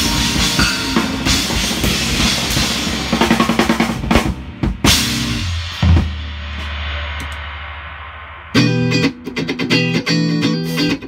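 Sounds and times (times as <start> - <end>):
live rock band playing: 0.0 - 6.0, 8.5 - 11.0
bass drum: 0.0 - 9.9.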